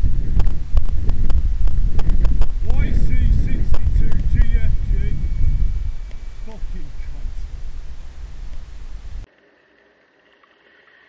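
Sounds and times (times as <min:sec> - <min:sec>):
wind buffeting and road rumble: 0:00.0 - 0:09.3.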